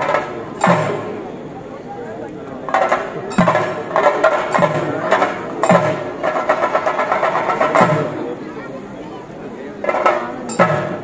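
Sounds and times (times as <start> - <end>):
deep drum strokes: 0.0 - 1.4, 2.6 - 8.4
continuous drumming: 0.0 - 11.0
crowd voices: 0.0 - 11.0.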